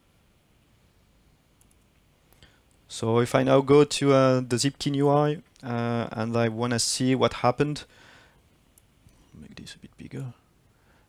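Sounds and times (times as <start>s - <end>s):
man speaking: 2.9s - 7.9s, 9.3s - 10.4s.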